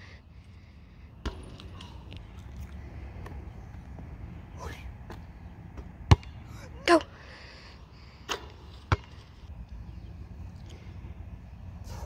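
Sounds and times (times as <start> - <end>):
basketball bouncing on asphalt: 1.2 - 1.9, 5.0 - 6.5, 8.3 - 9.3.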